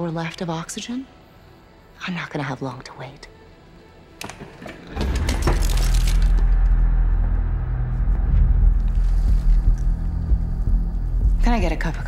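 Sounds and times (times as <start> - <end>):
deep rumbling drone: 5.4 - 12.0.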